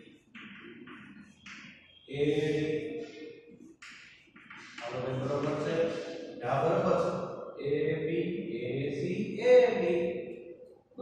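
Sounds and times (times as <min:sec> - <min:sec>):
man speaking slowly: 0:02.1 - 0:02.9, 0:04.8 - 0:10.0.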